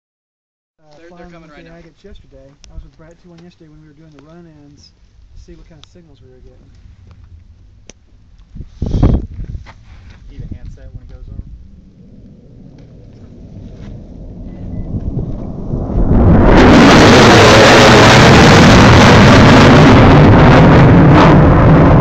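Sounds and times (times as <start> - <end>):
jet engines passing overhead: 10.1 - 22.0.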